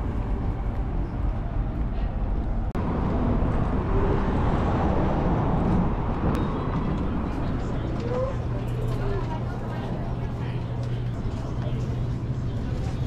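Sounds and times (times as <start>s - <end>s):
passing traffic rumble: 0.0s - 13.0s
indistinct voices: 6.3s - 13.0s.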